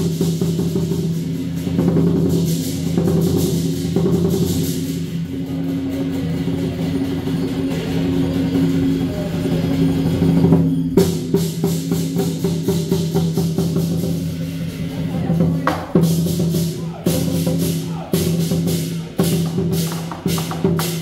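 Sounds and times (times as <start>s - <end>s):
cymbals clashing: 0.0s - 21.0s
drum roll: 0.0s - 21.0s.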